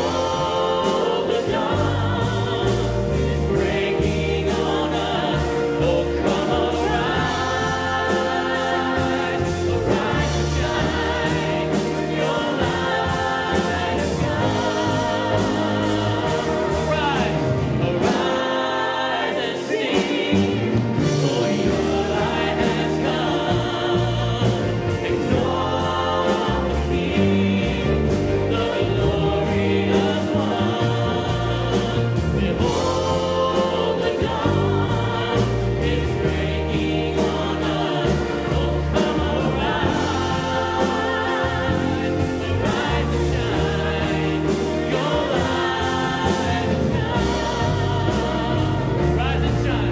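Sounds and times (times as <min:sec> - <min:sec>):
many voices singing along: 0:00.0 - 0:49.9
piano: 0:00.0 - 0:49.9
strings: 0:00.0 - 0:49.9.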